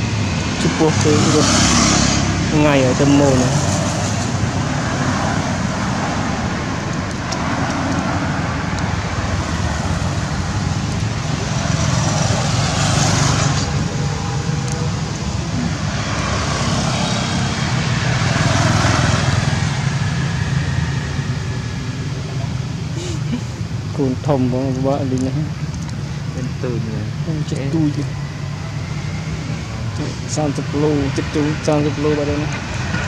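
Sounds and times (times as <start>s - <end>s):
road traffic rumble: 0.0s - 33.0s.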